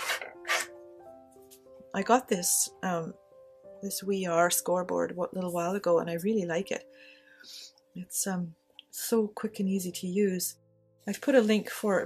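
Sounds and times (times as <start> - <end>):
paper rustling on plastic board: 0.0 - 0.7
soft piano-like music: 0.0 - 12.0.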